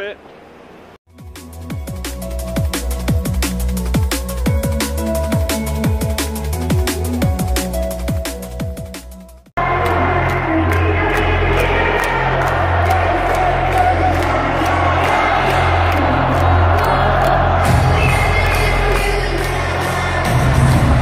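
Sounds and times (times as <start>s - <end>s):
loud techno music: 1.2s - 21.0s
crowd cheering and whooping: 11.1s - 21.0s.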